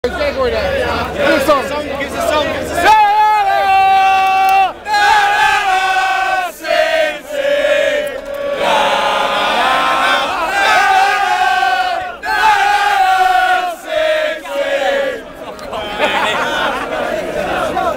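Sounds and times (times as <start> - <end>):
men chanting a song: 0.6 - 15.2.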